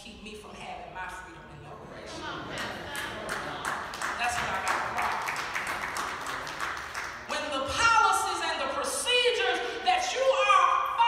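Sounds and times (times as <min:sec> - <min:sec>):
congregation clapping: 0:02.5 - 0:07.3.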